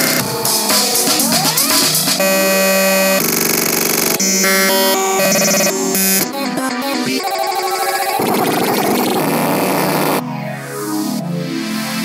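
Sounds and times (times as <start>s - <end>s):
held synth chords: 0.0s - 12.0s
synthesizer pitch sweeps: 0.0s - 12.0s.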